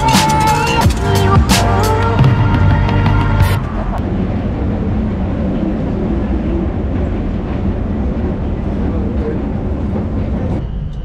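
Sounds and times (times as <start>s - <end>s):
escalator rumble and hum: 0.0s - 11.0s.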